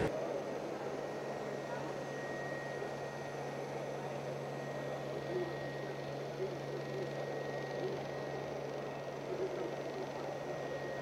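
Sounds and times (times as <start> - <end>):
robot vacuum running: 0.0 - 11.0.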